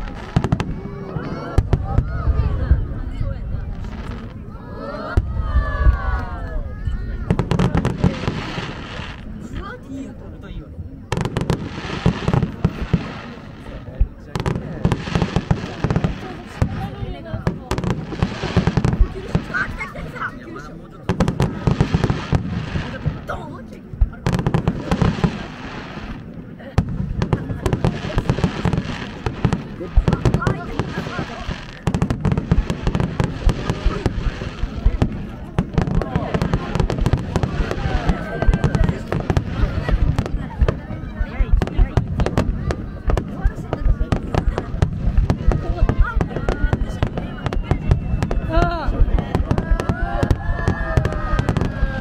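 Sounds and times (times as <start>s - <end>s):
fireworks bangs and crackles: 0.0s - 52.0s.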